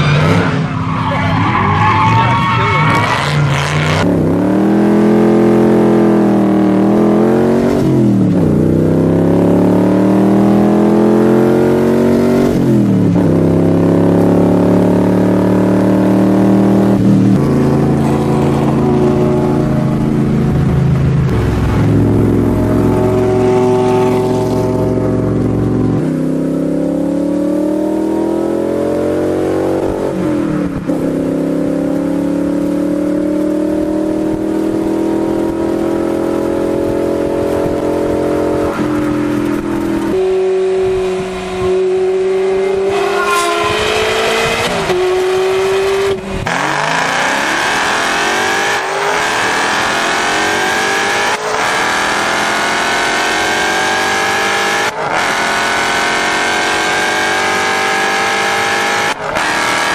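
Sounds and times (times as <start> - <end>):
car engines accelerating hard: 0.0 - 59.9.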